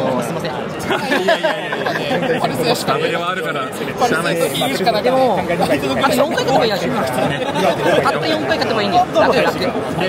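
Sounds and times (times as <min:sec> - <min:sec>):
crowd chatter in large hall: 0:00.0 - 0:10.0.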